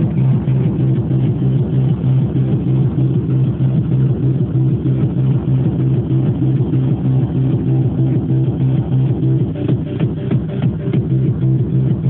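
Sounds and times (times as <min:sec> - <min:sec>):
pulsing bass beat: 0:00.0 - 0:12.0
synth layers: 0:00.0 - 0:12.0.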